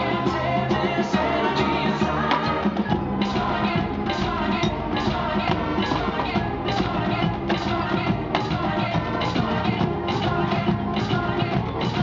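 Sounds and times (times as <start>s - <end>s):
marching band brass: 0.0s - 12.0s
percussion: 0.0s - 12.0s.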